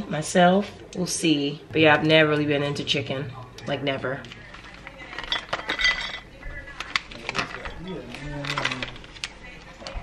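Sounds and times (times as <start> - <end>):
plastic cup crackling: 4.2 - 10.0.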